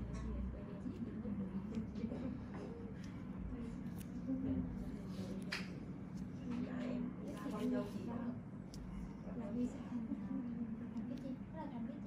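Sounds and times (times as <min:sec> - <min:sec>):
muffled talk: 0:00.0 - 0:12.0.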